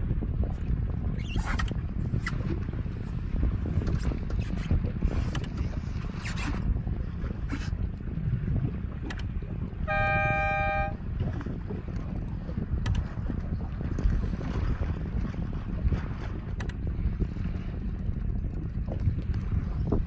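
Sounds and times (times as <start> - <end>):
water noise: 0.0 - 20.0
wind on microphone: 0.0 - 20.0
horn blast: 9.8 - 11.0.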